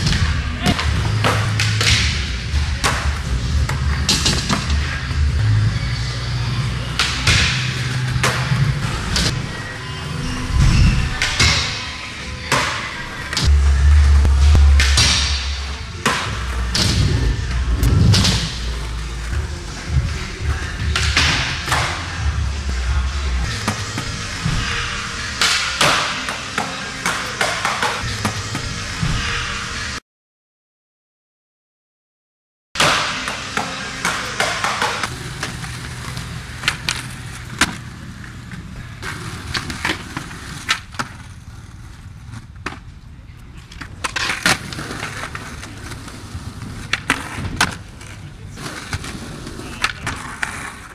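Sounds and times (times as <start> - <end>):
skateboard wheels rolling on concrete: 0.0 - 29.9, 32.9 - 50.9
music playing: 0.0 - 30.0
skateboard impacts: 32.8 - 50.9.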